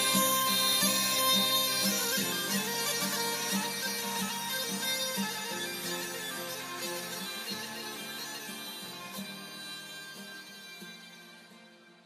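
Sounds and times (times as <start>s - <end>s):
instrumental melody over held tones: 0.0s - 11.6s.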